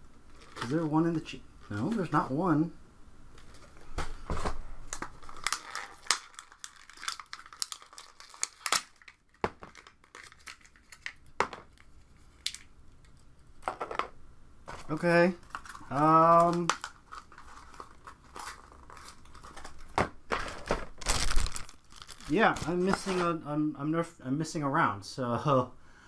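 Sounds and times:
packaging crinkling and rustling: 0.3s - 2.4s, 3.3s - 14.0s, 14.7s - 23.4s.

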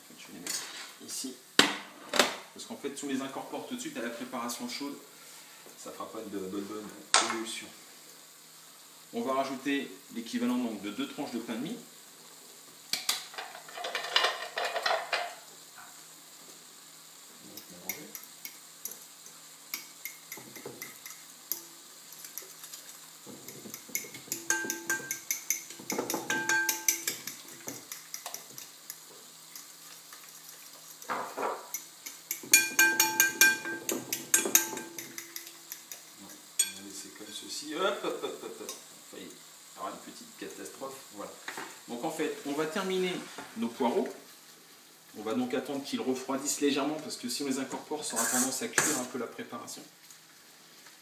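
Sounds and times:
fork clinking against glass bowl: 23.5s - 28.4s, 31.7s - 36.0s
glass bowl ringing: 24.4s - 25.3s, 25.9s - 27.2s, 32.5s - 35.4s.

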